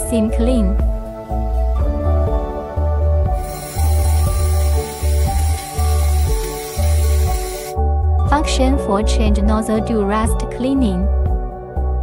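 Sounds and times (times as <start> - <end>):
music with steady beat: 0.8 - 8.4
high hiss of laser cleaning: 3.4 - 7.7.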